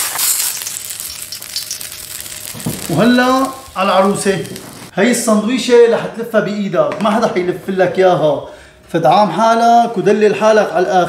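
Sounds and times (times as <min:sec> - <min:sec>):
sauce sizzling in a hot pan: 0:00.0 - 0:04.9.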